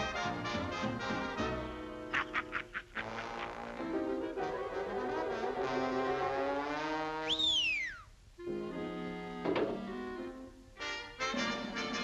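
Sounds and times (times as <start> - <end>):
brass-led orchestral swing music: 0.0 - 2.2, 3.0 - 7.4, 8.4 - 12.0.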